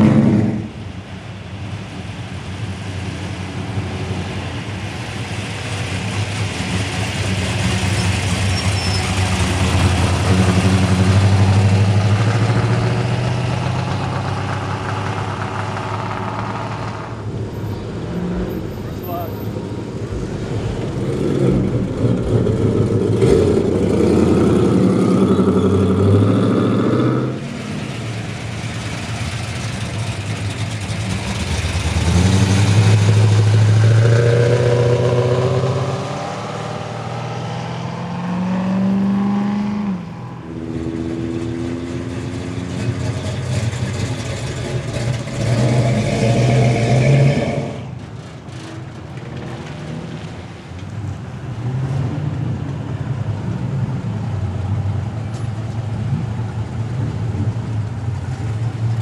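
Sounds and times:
cars driving past: 0.0 - 59.0.

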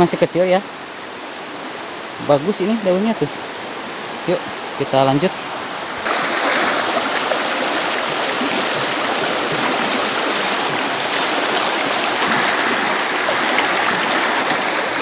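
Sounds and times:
water rushing over stones: 6.0 - 15.0.

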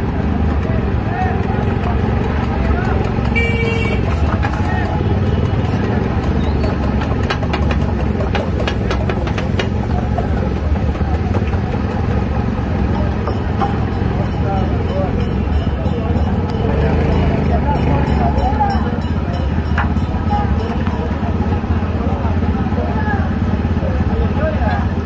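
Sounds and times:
motorcycle and traffic engines: 0.0 - 25.0
horn toot: 3.3 - 4.4.

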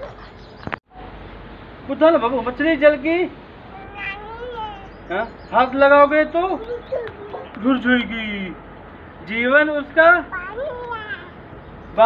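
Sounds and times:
high-pitched cry: 3.7 - 5.0.

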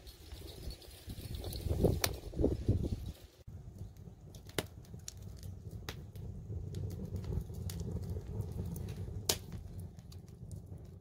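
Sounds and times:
wood fire crackling: 0.0 - 11.0.

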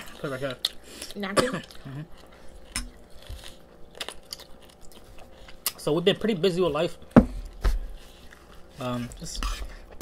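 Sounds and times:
chewing and eating noises: 0.0 - 10.0.

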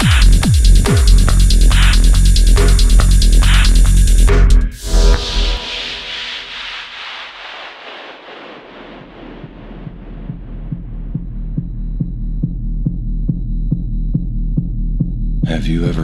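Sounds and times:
low electronic pulse: 0.0 - 15.6.

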